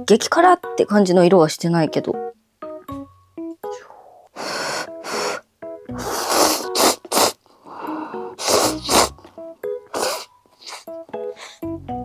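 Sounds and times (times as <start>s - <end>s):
faint keyboard music: 0.0s - 12.0s
person slurping noodles: 6.0s - 7.4s, 8.4s - 9.2s, 9.9s - 10.9s.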